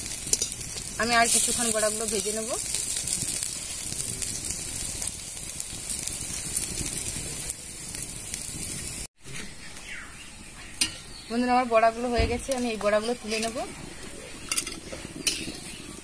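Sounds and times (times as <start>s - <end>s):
fritters sizzling in oil: 0.0s - 16.0s.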